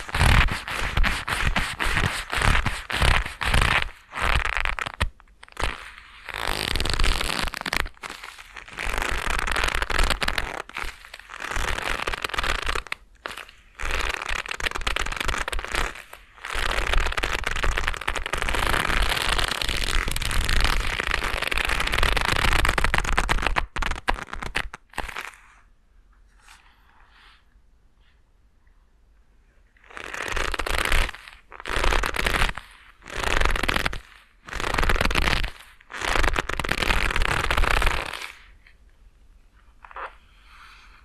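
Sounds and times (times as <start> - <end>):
leather gloves creaking: 0.0 - 25.4, 29.8 - 38.4.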